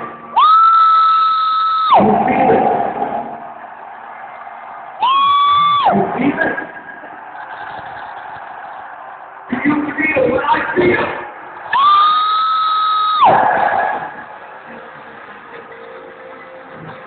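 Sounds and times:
crowd shouting and cheering: 0:00.0 - 0:17.0
loud piercing whistles: 0:00.3 - 0:02.0, 0:11.7 - 0:13.4.

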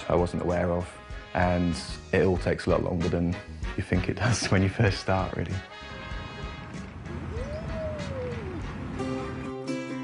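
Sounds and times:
faint background music: 0:00.0 - 0:10.0
toddler calling: 0:07.3 - 0:08.7.

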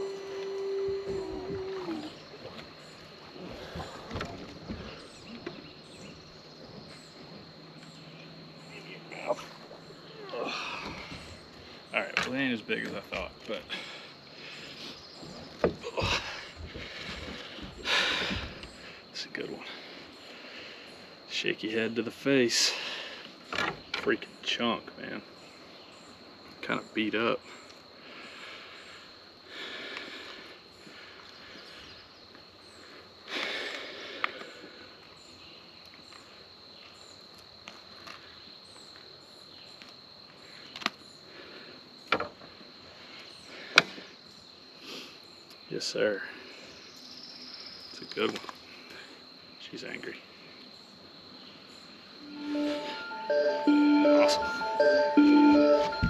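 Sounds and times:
high-pitched insect drone: 0:00.0 - 0:02.9, 0:52.2 - 0:56.0.

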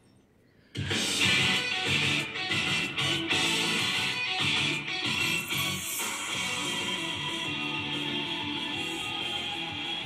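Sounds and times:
theme song with guitar from television: 0:00.8 - 0:10.0.

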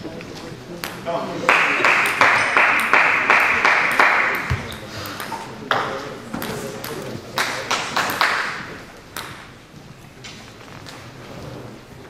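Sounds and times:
table tennis ball bouncing: 0:00.8 - 0:01.1, 0:01.8 - 0:09.6.

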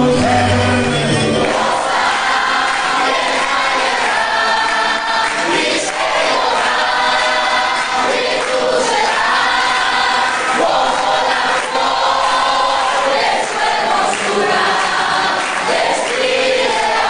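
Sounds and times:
congregation singing: 0:00.0 - 0:17.0.

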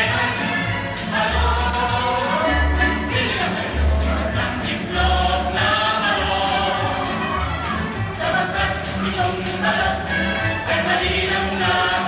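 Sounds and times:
chorus singing held notes: 0:00.0 - 0:12.0.

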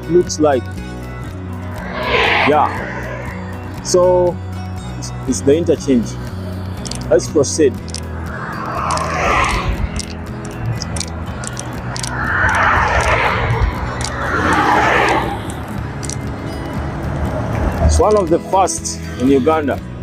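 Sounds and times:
background music: 0:00.0 - 0:20.0
vehicles passing on highway: 0:00.0 - 0:20.0.

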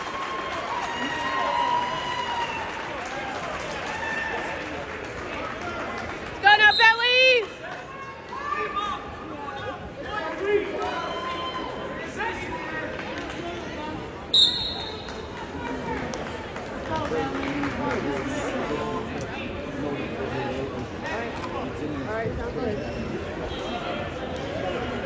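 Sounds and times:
crowd chatter: 0:00.0 - 0:25.0
referee whistle blast: 0:14.3 - 0:15.1.

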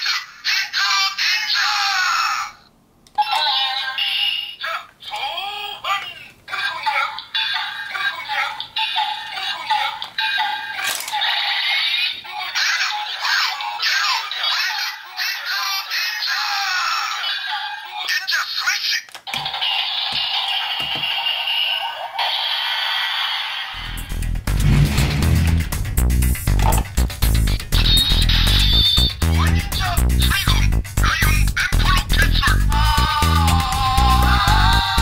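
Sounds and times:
toy electronic sound effects: 0:17.8 - 0:23.9, 0:27.7 - 0:32.7.

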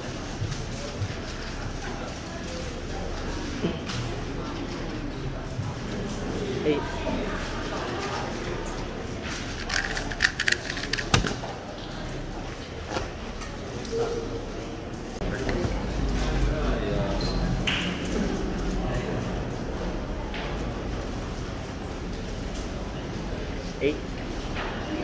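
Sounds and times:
plastic cube clicking: 0:09.6 - 0:11.4.

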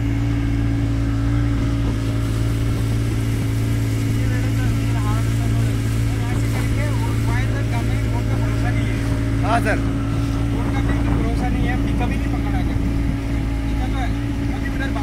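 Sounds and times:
motorboat engine droning: 0:00.0 - 0:15.0
water rushing along hull: 0:00.0 - 0:15.0.

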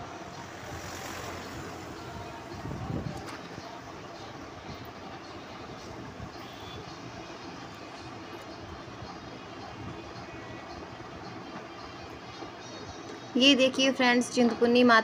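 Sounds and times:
vehicle engine and road noise: 0:00.0 - 0:15.0.

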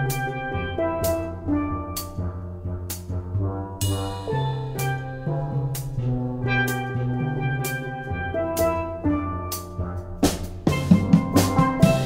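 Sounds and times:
steel drum band playing: 0:00.0 - 0:12.0
drum kit hits: 0:02.9 - 0:12.0.

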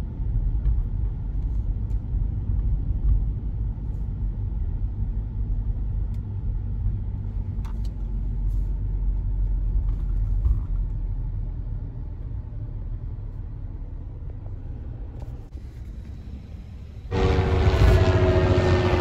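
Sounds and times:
car engine rumble: 0:00.0 - 0:19.0
road noise: 0:00.0 - 0:19.0.

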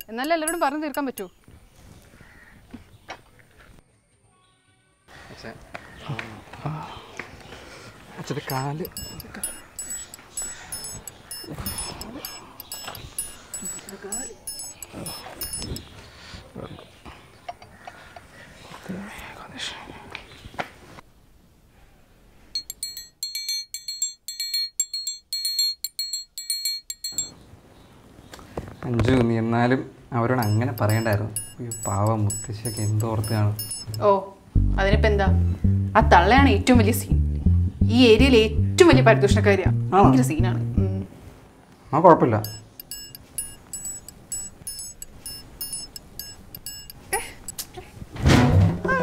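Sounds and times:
rapid high-pitched electronic beeps: 0:00.0 - 0:01.3, 0:08.5 - 0:15.9, 0:30.4 - 0:34.1, 0:42.4 - 0:47.6
tinkling bell-like music notes: 0:00.0 - 0:01.4, 0:08.5 - 0:15.9, 0:22.6 - 0:27.4, 0:30.4 - 0:34.1, 0:42.4 - 0:47.6.

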